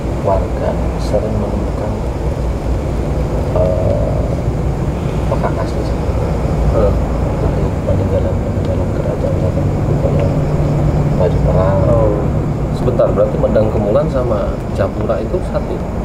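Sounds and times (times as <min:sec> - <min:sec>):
low background rumble: 0:00.0 - 0:16.0
men talking quietly: 0:00.0 - 0:16.0.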